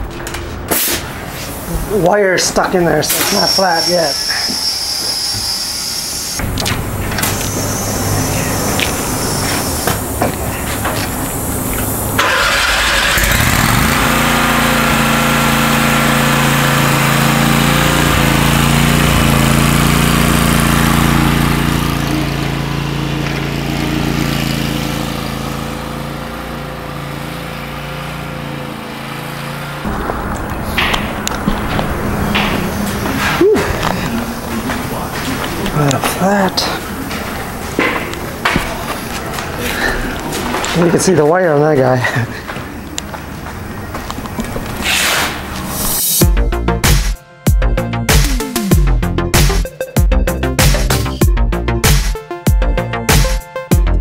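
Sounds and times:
mower engine running: 1.8 - 44.8.

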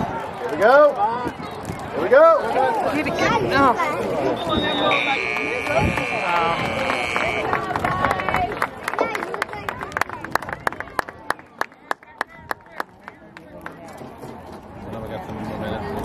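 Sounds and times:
crowd voices: 0.0 - 16.0
rhythmic handclapping in unison: 5.0 - 13.9.

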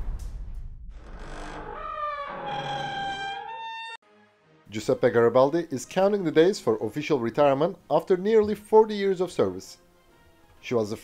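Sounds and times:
low rumble: 0.0 - 1.6.

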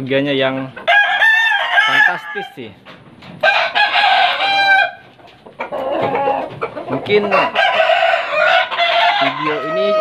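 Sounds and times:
rooster crowing: 0.9 - 2.6, 3.4 - 5.0, 7.4 - 10.0.

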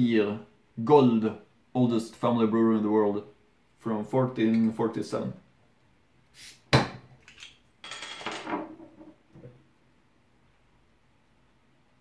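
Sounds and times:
bottle opening hiss: 6.3 - 6.7.

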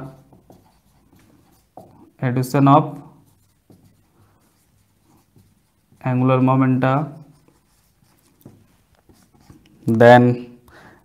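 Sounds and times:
marker scratching on whiteboard: 0.0 - 10.3.

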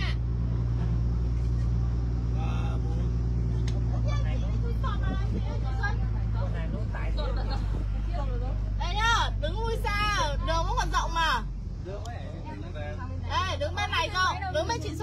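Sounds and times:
boat engine droning: 0.0 - 15.0
faint voices chattering: 0.0 - 15.0.

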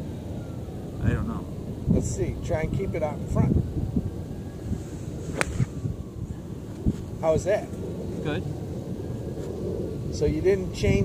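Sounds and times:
wind on microphone: 0.9 - 11.0
golf iron striking ball: 5.3 - 5.8.

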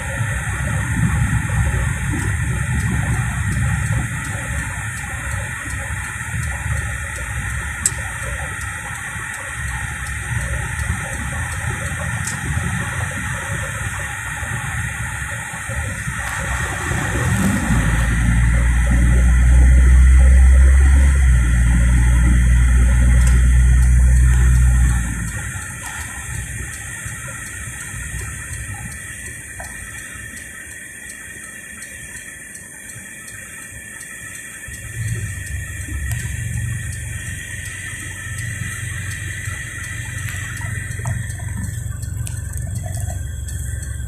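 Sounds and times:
deep low drone: 0.0 - 31.0, 33.8 - 44.0
car engine and tyre rumble: 0.0 - 44.0.

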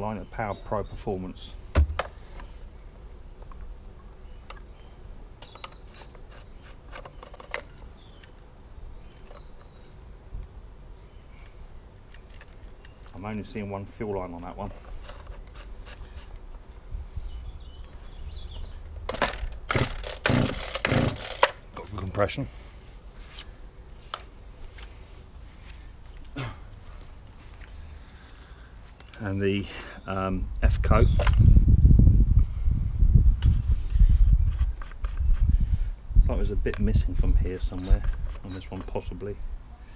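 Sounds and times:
bird chirps: 4.2 - 11.4
wind rumble on microphone: 16.8 - 19.1, 30.4 - 38.4.

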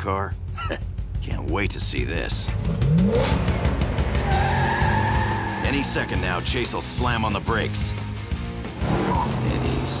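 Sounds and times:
background music: 0.0 - 10.0
cartoon car revving and pulling away: 2.5 - 6.5
tire squeal: 4.1 - 6.4, 9.0 - 9.4.

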